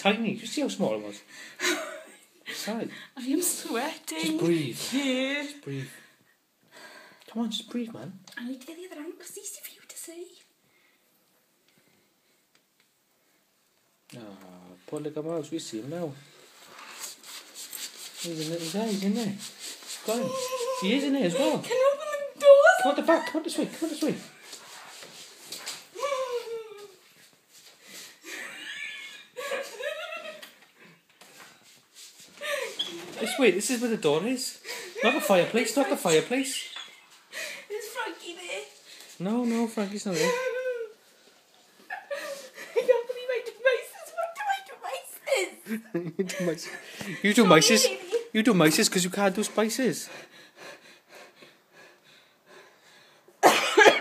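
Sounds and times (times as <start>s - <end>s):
person making high sliding sounds: 16.8s - 21.6s, 24.3s - 27.2s
person coughing: 53.4s - 54.0s.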